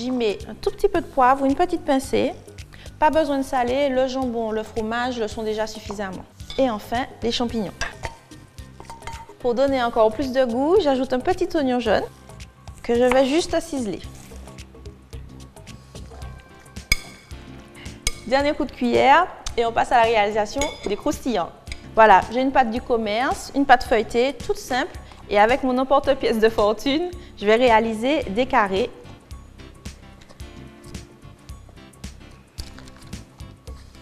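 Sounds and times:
soft background music: 0:00.0 - 0:34.0
clink on glass bowl: 0:20.6 - 0:21.0.

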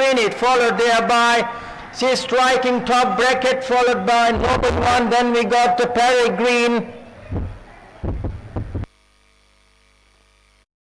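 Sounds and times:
faint steady hum: 0:00.0 - 0:10.6
low irregular thuds: 0:07.3 - 0:08.9.

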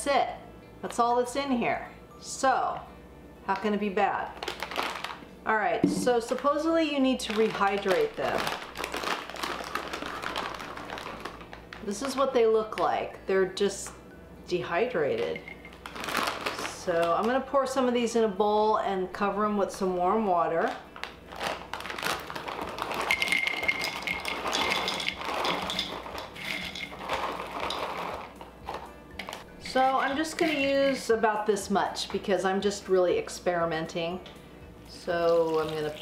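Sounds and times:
plastic bag crinkling: 0:04.3 - 0:05.2, 0:06.0 - 0:12.9, 0:15.4 - 0:17.3, 0:20.6 - 0:31.1
dry pieces pattering into bowl: 0:07.2 - 0:12.8, 0:21.8 - 0:31.1.

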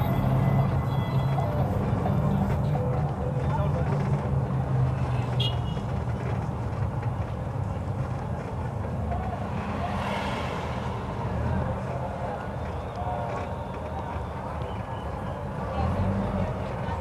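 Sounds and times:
street noise: 0:00.0 - 0:17.0.

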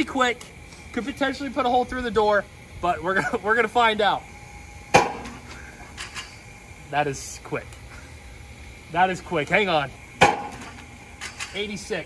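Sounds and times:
pitching machine firing crack: 0:04.9 - 0:05.6, 0:10.2 - 0:11.7.

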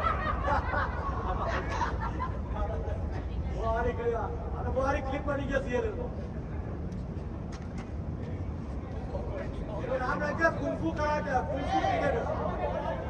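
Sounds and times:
men calling out and talking: 0:08.0 - 0:13.0.

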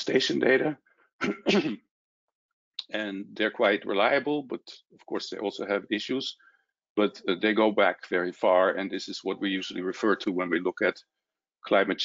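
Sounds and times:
man coughing: 0:01.2 - 0:01.8.

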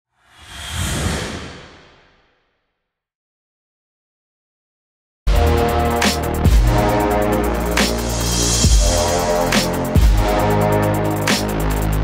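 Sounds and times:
whoosh with deep rumble: 0:00.2 - 0:02.3.

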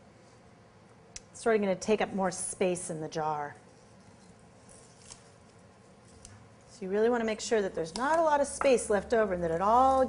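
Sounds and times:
herbs rustling in glass jar: 0:03.6 - 0:07.0, 0:07.9 - 0:10.0.

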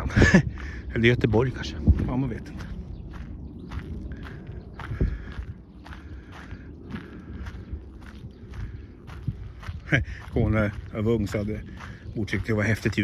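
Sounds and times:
footsteps on gravel: 0:00.0 - 0:13.0.

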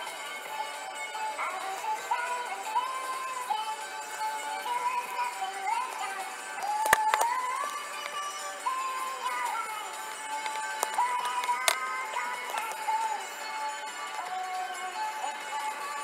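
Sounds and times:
pop song on car radio: 0:00.0 - 0:16.0.

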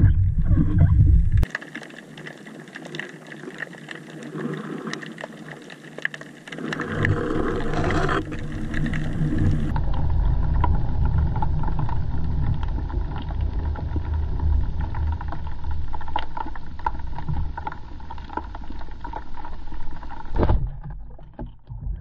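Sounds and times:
low rumble of moving water: 0:00.0 - 0:22.0
underwater clicks and crackles: 0:00.0 - 0:22.0.

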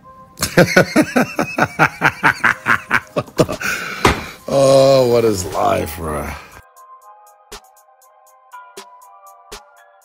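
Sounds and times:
person laughing in bursts: 0:00.4 - 0:04.3
person breathing: 0:03.6 - 0:04.5.

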